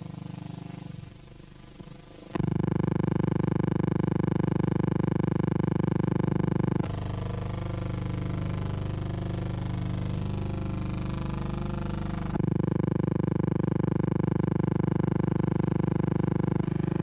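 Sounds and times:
low buzzing hum: 0.0s - 17.0s
quieter wavering hum: 16.6s - 17.0s.

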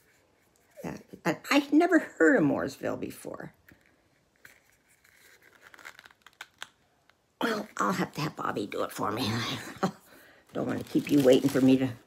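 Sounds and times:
container crinkling and rustling: 4.3s - 6.9s, 10.5s - 12.0s.

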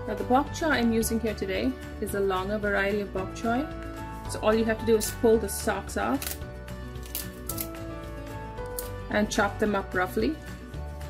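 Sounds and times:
background music with held tones: 0.0s - 11.0s
vegetable stalks snapping: 7.0s - 7.8s.

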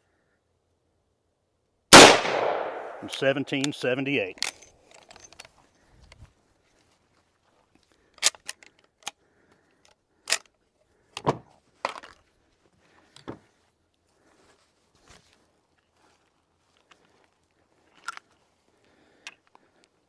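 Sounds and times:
handling clicks and clacks: 3.1s - 5.6s.

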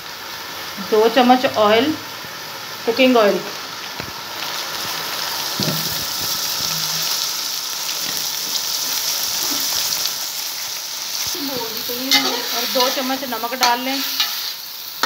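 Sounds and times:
water boiling in a pot: 0.0s - 15.0s.

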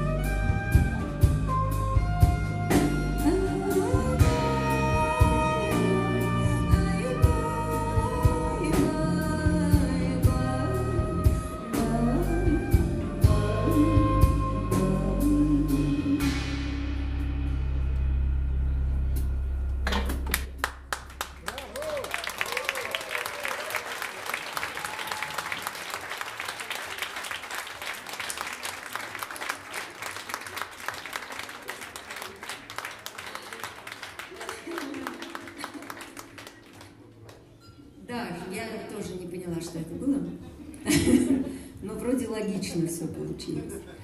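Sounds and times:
audience applause: 20.2s - 37.5s.

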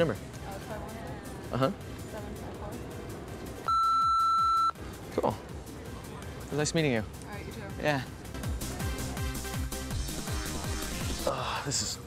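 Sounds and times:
censor bleep: 3.7s - 4.8s.

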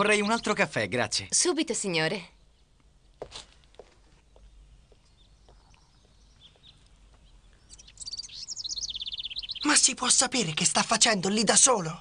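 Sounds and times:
birds chirping: 0.0s - 12.0s
bird trilling: 4.9s - 10.5s.

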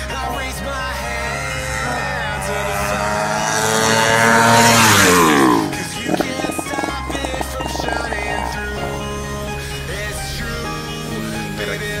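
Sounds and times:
background music: 0.0s - 12.0s
motorcycle passing at full throttle: 0.4s - 9.5s.

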